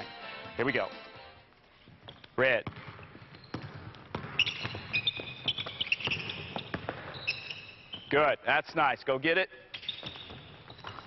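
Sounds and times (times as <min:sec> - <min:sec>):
sneakers squeaking: 0:00.0 - 0:08.3, 0:09.6 - 0:11.0
basketball thumping on court: 0:02.6 - 0:07.1.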